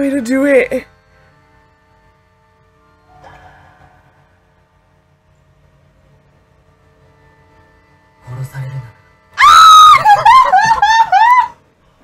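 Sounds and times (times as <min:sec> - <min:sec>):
woman screaming: 0:09.4 - 0:11.6.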